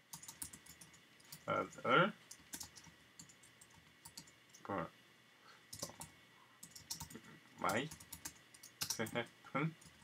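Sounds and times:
computer keyboard typing: 0:00.1 - 0:01.7, 0:02.3 - 0:04.6, 0:05.7 - 0:10.0.

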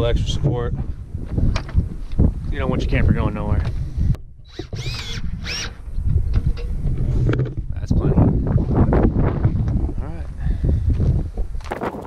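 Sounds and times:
cordless drill motor whine: 0:04.4 - 0:06.6.

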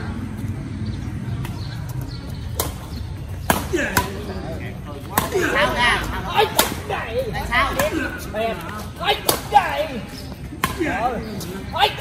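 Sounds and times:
voices calling out: 0:00.0 - 0:12.0
racket hitting shuttlecock: 0:02.6 - 0:04.4, 0:05.1 - 0:05.6, 0:06.4 - 0:06.8.

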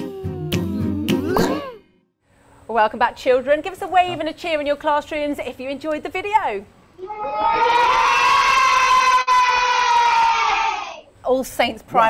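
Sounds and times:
children cheering and screaming: 0:07.0 - 0:11.0.

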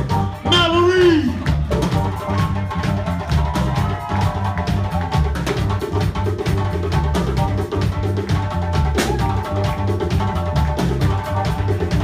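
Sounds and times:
drum kit steady beat: 0:00.0 - 0:12.0.

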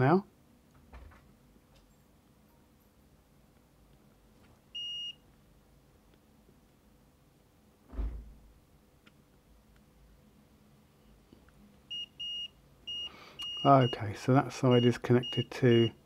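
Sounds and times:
multimeter continuity beep: 0:04.8 - 0:05.2, 0:11.9 - 0:16.0
short low thump: 0:07.9 - 0:08.5.

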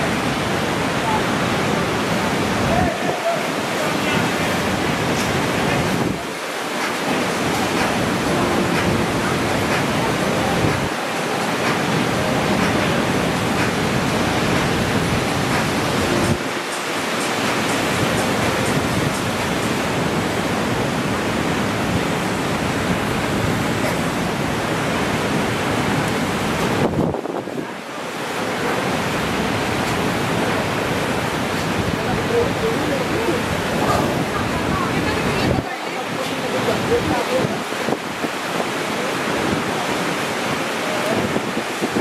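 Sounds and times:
ocean surf breaking: 0:00.0 - 0:42.0.

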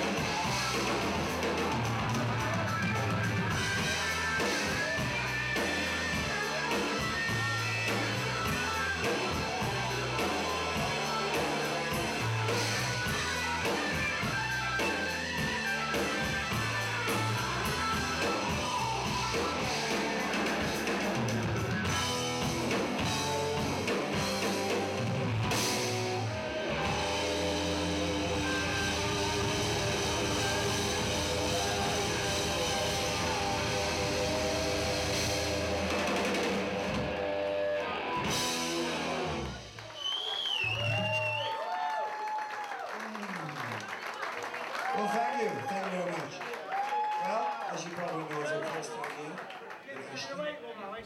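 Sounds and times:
live rock band playing: 0:00.0 - 0:40.0
audience cheering: 0:00.0 - 0:50.4
audience shouts: 0:28.4 - 0:35.2, 0:39.8 - 0:49.8
person whistling: 0:39.9 - 0:41.7.

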